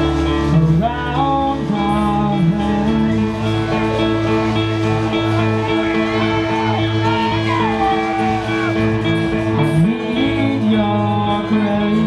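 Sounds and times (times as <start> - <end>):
person singing lead vocal: 0.0 - 4.1, 5.9 - 12.0
guitars: 0.0 - 12.0
keyboard: 0.0 - 12.0.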